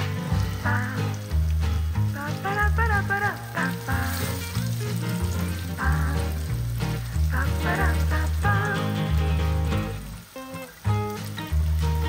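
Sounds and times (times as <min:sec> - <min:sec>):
music with bass line and melody: 0:00.0 - 0:12.0
patties sizzling in oil: 0:00.0 - 0:12.0.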